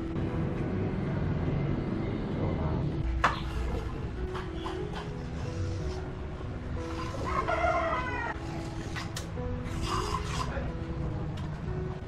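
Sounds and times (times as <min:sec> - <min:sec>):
soft background music: 0:00.0 - 0:12.0
rooster crowing: 0:07.2 - 0:08.4.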